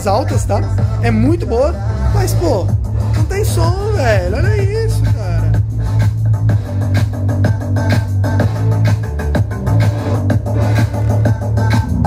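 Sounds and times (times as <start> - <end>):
loud music with heavy bass beat: 0.0 - 12.0.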